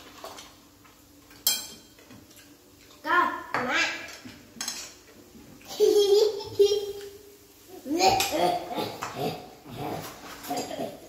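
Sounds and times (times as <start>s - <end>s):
utensils clinking on plates: 0.0s - 3.0s, 3.6s - 5.1s.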